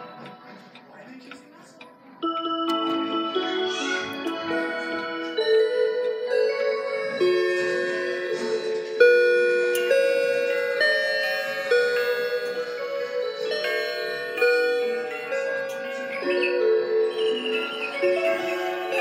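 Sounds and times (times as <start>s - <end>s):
clocks chiming melodies: 2.2s - 19.0s.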